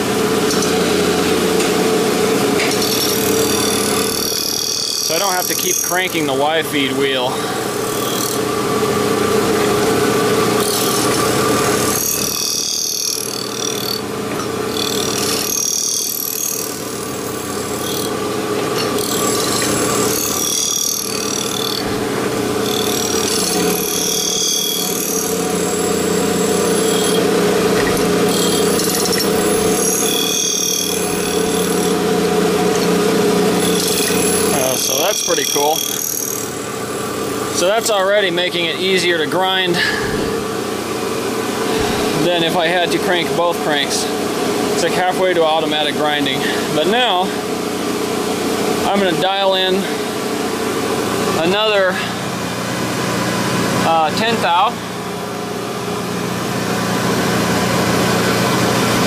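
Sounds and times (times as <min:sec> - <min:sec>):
grinder motor hum: 0:00.0 - 0:59.0
wheel grinding steel: 0:00.5 - 0:38.7.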